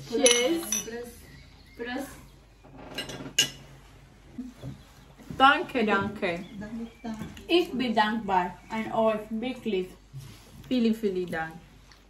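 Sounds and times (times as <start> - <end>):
tableware clinking: 0.1 - 1.1, 2.9 - 3.7.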